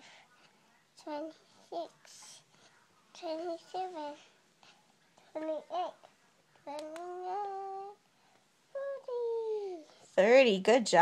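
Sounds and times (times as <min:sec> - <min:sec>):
toddler sing-song counting: 0:01.0 - 0:02.4, 0:03.1 - 0:04.4, 0:05.3 - 0:08.0, 0:08.7 - 0:09.9.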